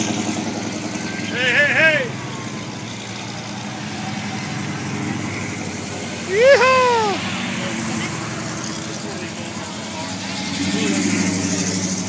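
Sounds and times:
car engines running slowly: 0:00.0 - 0:12.0
person whooping cheer: 0:06.3 - 0:07.2.

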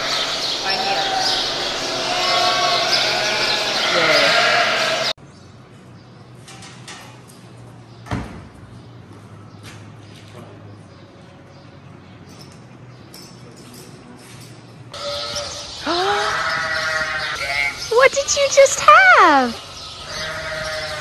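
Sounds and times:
barn noise: 0:00.0 - 0:05.1, 0:15.0 - 0:21.0
sheep bleating: 0:00.7 - 0:05.1
faint shop background: 0:05.2 - 0:15.0.

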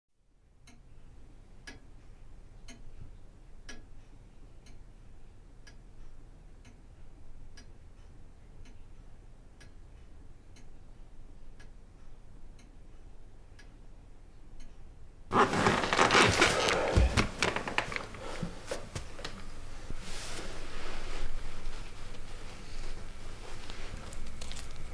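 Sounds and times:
low steady hum: 0:00.3 - 0:24.9
clock ticking: 0:01.6 - 0:13.8.

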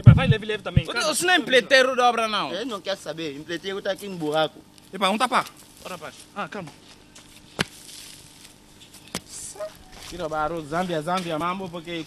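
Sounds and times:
faint outdoor background: 0:00.0 - 0:12.0
hoe striking earth: 0:07.5 - 0:08.2.

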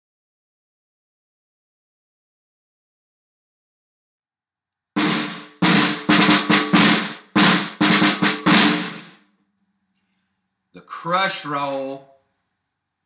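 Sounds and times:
snare drum buzz rolls: 0:05.0 - 0:09.2.

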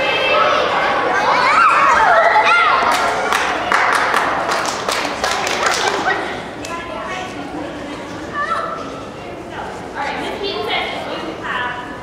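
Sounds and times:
girls shouting and talking: 0:00.0 - 0:12.0.

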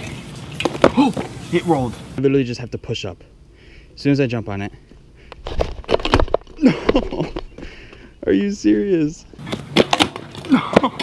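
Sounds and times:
bike frame clattering on pavers: 0:00.0 - 0:01.4
sharp cracks and knocks: 0:09.4 - 0:11.0.

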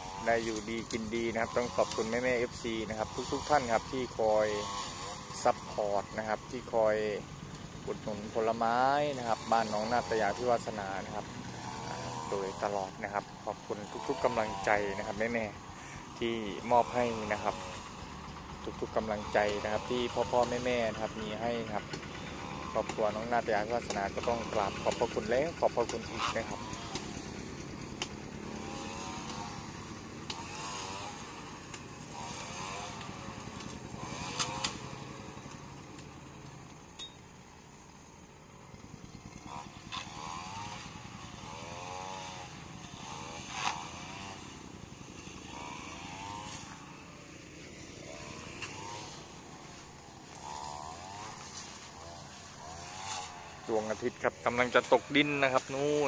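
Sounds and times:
vehicles passing: 0:00.0 - 0:56.0
sharp clicks: 0:33.0 - 0:34.8.

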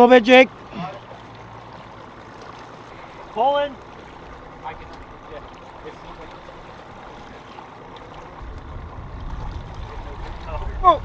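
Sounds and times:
water washing along boat hull: 0:00.0 - 0:11.0
low rumble: 0:08.2 - 0:11.0.

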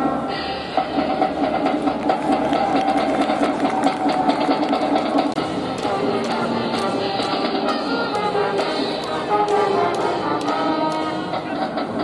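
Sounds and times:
quick regular drumbeat: 0:01.0 - 0:07.5
brass instruments playing fast notes: 0:01.2 - 0:12.0.

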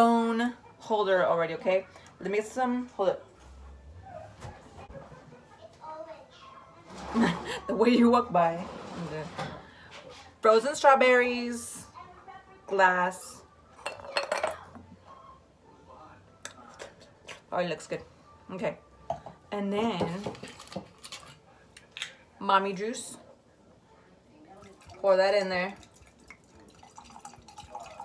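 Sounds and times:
wine pouring into a glass: 0:25.7 - 0:28.0.

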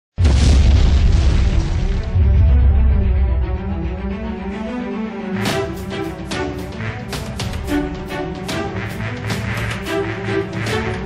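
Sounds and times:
explosion boom and rumble: 0:00.2 - 0:03.7
dramatic music: 0:00.2 - 0:11.0.

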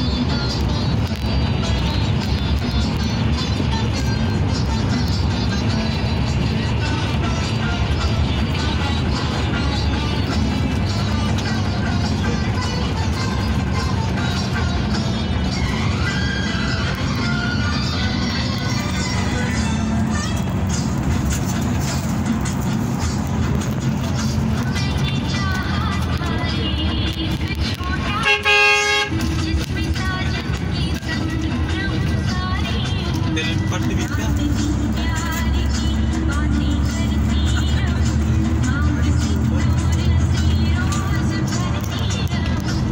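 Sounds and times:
bus engine drone: 0:00.0 - 0:42.9
music with singing: 0:00.0 - 0:42.9
road noise: 0:00.0 - 0:42.9
bus horn: 0:26.5 - 0:29.4.

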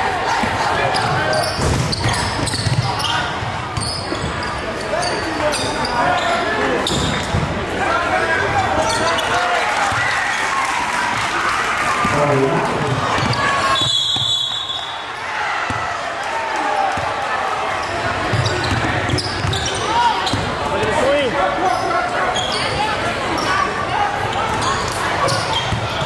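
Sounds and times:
crowd chatter and shouts: 0:00.0 - 0:26.0.

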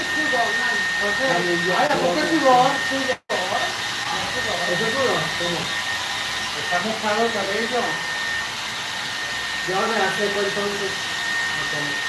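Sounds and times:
hair dryer blowing: 0:00.0 - 0:12.0.

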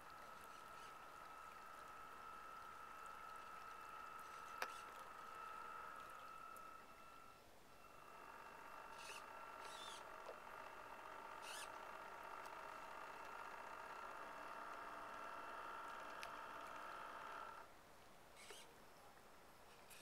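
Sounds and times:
model boat motor whining: 0:00.0 - 0:17.7, 0:18.4 - 0:18.7.

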